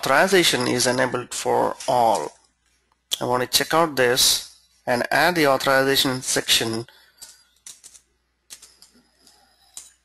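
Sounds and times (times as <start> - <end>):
computer keyboard keystrokes: 7.2 - 10.0.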